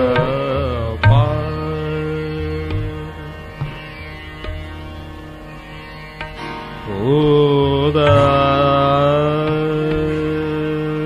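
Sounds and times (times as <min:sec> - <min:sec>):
man singing classical vocals: 0:00.0 - 0:04.2, 0:06.8 - 0:11.0
tanpura drone: 0:00.0 - 0:11.0.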